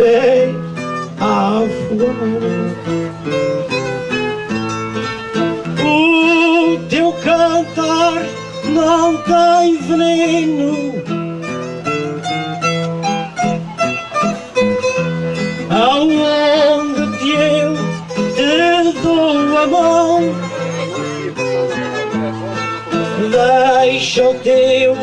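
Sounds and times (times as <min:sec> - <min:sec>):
acoustic guitar picking: 0:00.0 - 0:25.0.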